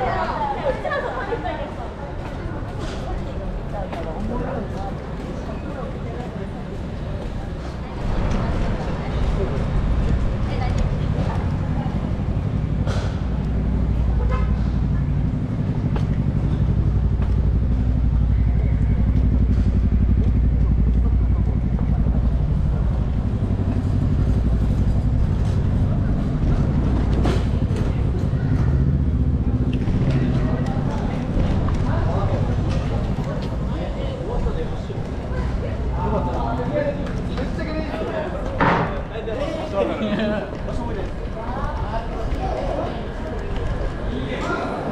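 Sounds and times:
car engines passing: 0:00.0 - 0:44.9
indistinct voices: 0:00.0 - 0:44.9.

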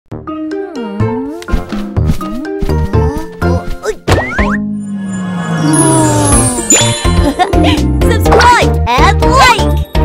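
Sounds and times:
cartoon intro jingle: 0:04.5 - 0:07.8.

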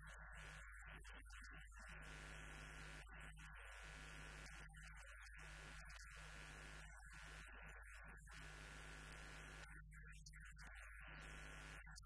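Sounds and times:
faint electrical hum: 0:11.2 - 0:11.8.

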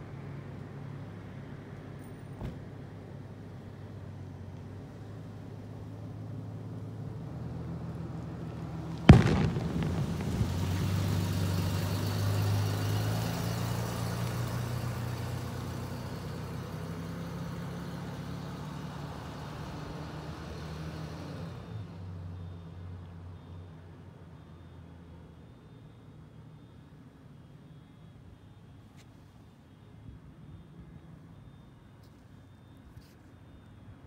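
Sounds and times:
engine hum: 0:00.0 - 0:24.2.

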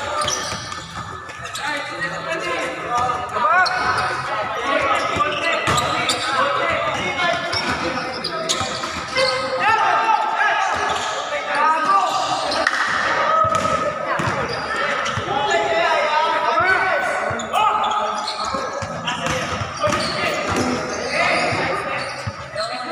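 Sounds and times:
players calling out: 0:00.0 - 0:22.9.

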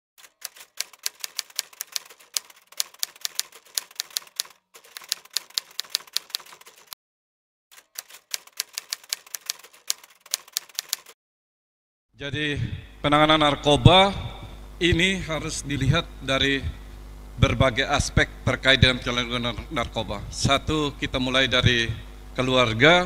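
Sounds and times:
keyboard keystroke clacks: 0:00.2 - 0:06.9, 0:07.8 - 0:11.2.

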